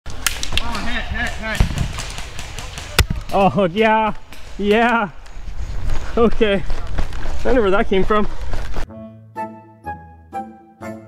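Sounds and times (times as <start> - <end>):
airsoft guns popping: 0.1 - 3.6.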